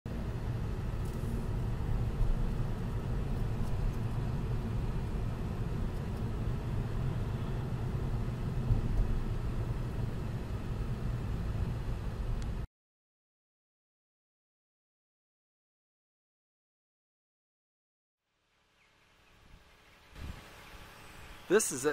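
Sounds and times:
car road noise in cabin: 0.1s - 12.7s.

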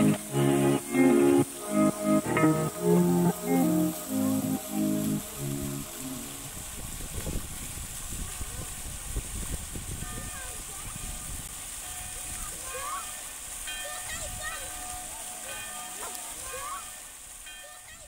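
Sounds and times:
background music: 0.0s - 6.5s
fountain water splashing: 0.0s - 18.0s
faint voices: 12.2s - 18.0s.

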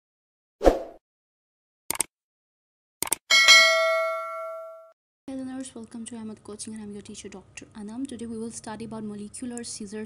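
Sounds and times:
notification bell ding: 3.3s - 4.9s.

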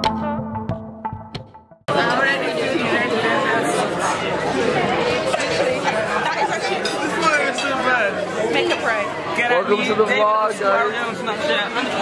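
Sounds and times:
people chattering: 1.9s - 12.0s.

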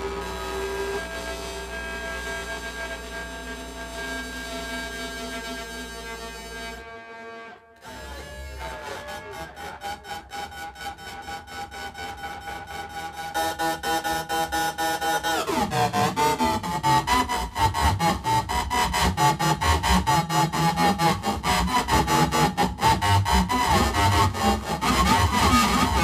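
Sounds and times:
layered drones and tones: 0.0s - 11.0s.

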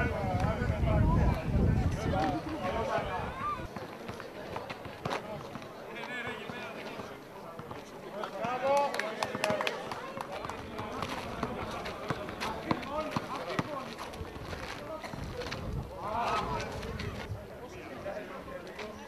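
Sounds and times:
players moving on court: 2.0s - 19.0s.

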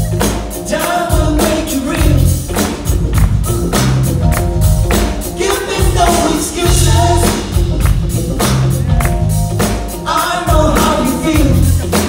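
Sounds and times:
drum beat: 0.0s - 12.0s
keyboards: 0.0s - 12.0s
live band playing: 0.0s - 12.0s
man singing: 0.5s - 2.8s, 5.2s - 7.6s, 9.9s - 12.0s.

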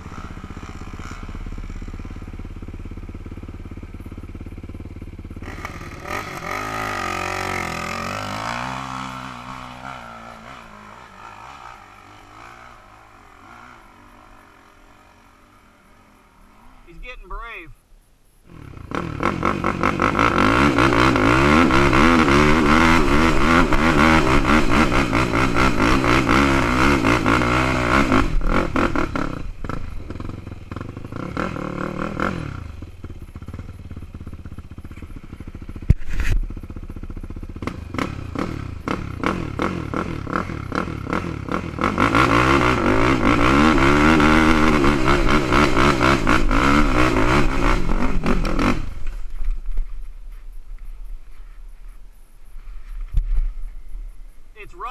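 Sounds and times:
atv engine revving: 0.0s - 17.6s, 18.4s - 49.9s.

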